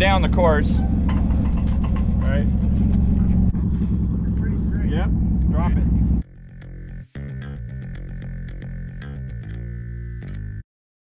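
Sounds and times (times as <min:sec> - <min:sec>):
music with distorted electric guitar: 0:06.3 - 0:10.6.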